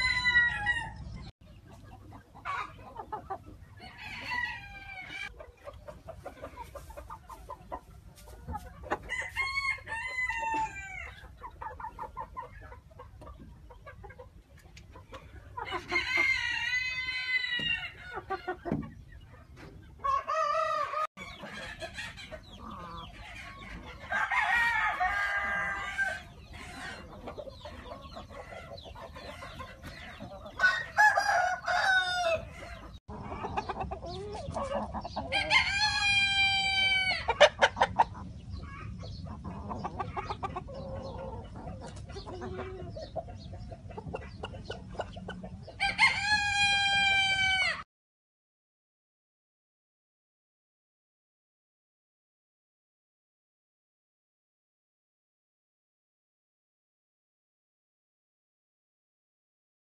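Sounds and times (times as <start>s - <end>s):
roosters crowing: 0.0s - 1.2s, 3.8s - 5.3s, 8.9s - 11.3s, 15.6s - 18.6s, 20.0s - 27.2s, 28.3s - 33.5s, 34.3s - 37.9s, 45.7s - 47.8s
chickens clucking: 0.0s - 47.8s.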